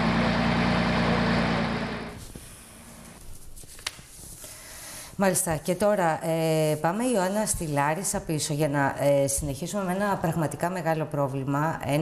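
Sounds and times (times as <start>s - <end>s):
diesel truck engine running: 0.0s - 3.2s.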